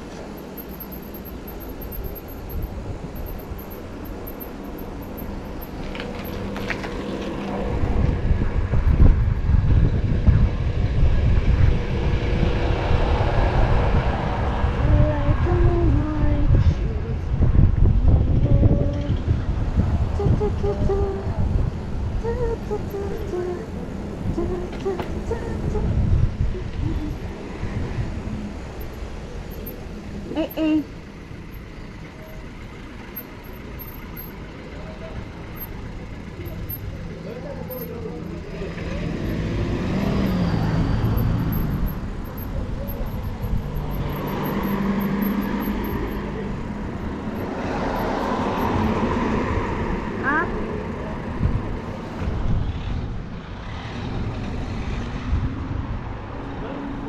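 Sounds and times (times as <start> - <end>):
car traffic passing: 0.0 - 18.4, 19.1 - 57.0
wind buffeting microphone: 1.4 - 30.3.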